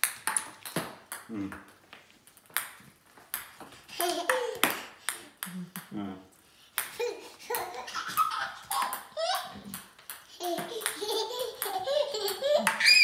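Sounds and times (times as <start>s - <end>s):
ping pong balls bouncing on floor: 0.0s - 13.0s.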